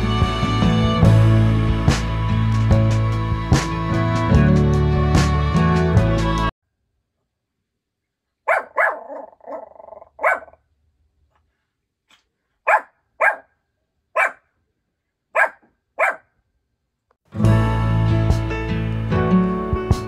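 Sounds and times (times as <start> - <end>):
small dog yapping: 8.5 - 10.6, 12.7 - 13.5, 14.2 - 14.4, 15.4 - 16.2.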